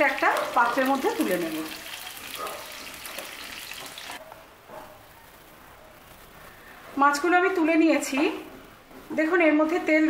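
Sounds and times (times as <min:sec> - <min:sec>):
fish sizzling in hot oil: 0:00.0 - 0:04.2.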